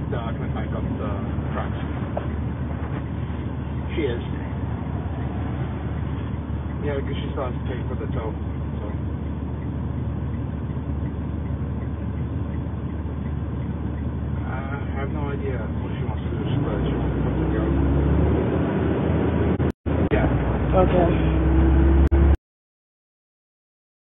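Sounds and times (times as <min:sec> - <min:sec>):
engine and road rumble in cab: 0:00.0 - 0:22.4.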